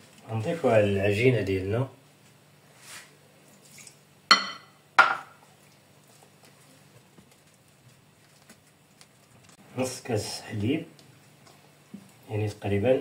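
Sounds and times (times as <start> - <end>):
glass clinking against glass bowl: 4.3 - 5.3.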